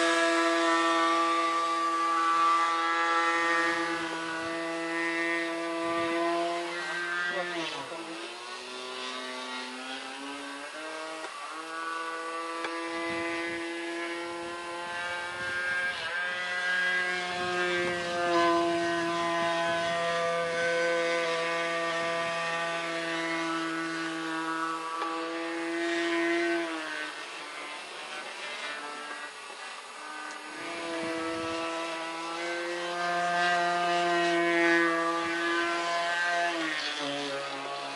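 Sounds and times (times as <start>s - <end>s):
model airplane engine: 0.0s - 37.9s.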